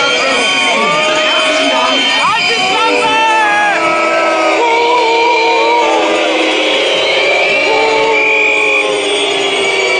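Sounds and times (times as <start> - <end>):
music with singing: 0.0 - 9.9.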